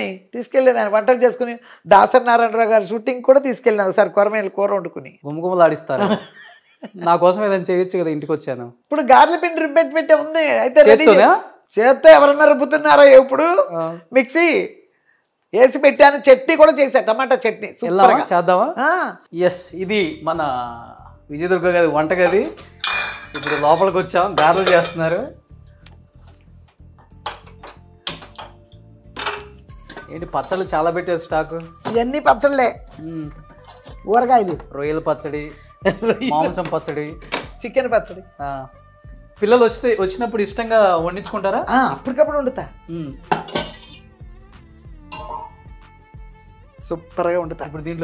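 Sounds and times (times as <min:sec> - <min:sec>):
person talking: 0:15.6 - 0:22.6, 0:34.0 - 0:38.7
metal kitchenware clinking: 0:22.2 - 0:25.3, 0:27.2 - 0:30.8, 0:33.5 - 0:34.6, 0:43.3 - 0:44.0, 0:45.2 - 0:45.5.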